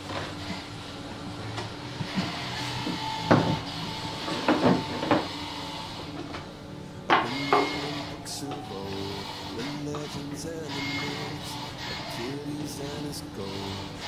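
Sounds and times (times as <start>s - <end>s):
faint background music: 0.0s - 14.0s.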